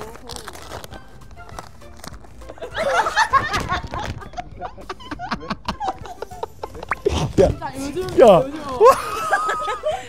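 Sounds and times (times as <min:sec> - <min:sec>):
wrapping paper tearing: 0:00.0 - 0:02.7
background music: 0:00.0 - 0:10.0
high quavering laughter: 0:02.7 - 0:07.2.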